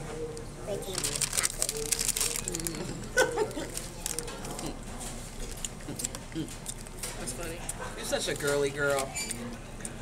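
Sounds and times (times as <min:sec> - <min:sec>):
faint voices: 0:00.0 - 0:06.7
taco shell and wrapper crackling: 0:00.8 - 0:04.7.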